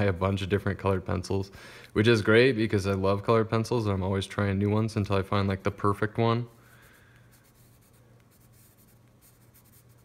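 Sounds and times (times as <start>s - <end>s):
low steady hum: 0.0s - 10.0s
colored pencil scratching on paper: 6.7s - 10.0s.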